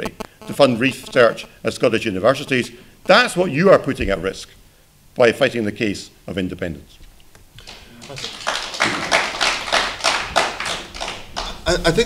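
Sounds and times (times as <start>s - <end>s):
audience applauding: 7.6s - 11.7s.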